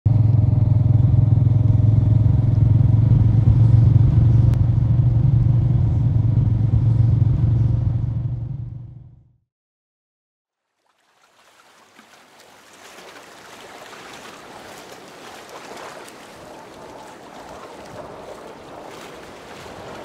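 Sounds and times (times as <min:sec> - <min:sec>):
motorcycle engine rumble: 0:00.1 - 0:09.3.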